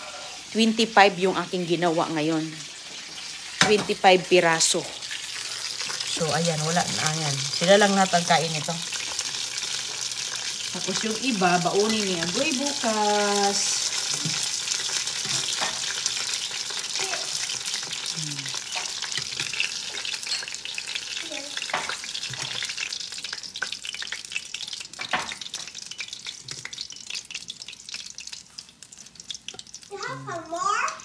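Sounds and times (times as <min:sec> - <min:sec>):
food sizzling in oil: 0:00.0 - 0:31.0.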